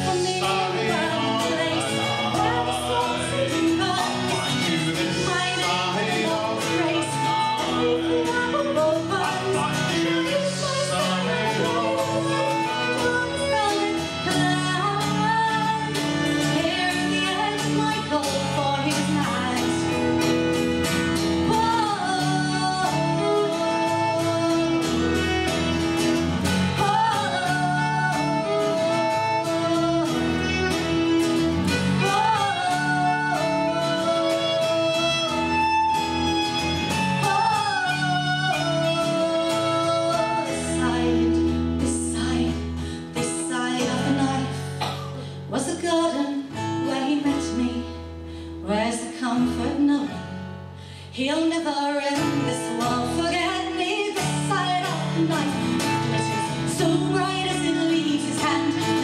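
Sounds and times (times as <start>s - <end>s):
woman singing: 0.0s - 50.4s, 51.1s - 59.0s
bass guitar: 0.0s - 51.0s, 51.8s - 59.0s
strummed acoustic guitar: 0.0s - 59.0s
violin: 0.0s - 59.0s.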